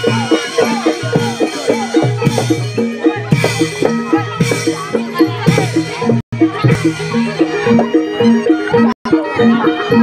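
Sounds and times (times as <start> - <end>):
gamelan struck notes: 0.0 - 10.0
low drum: 0.0 - 10.0.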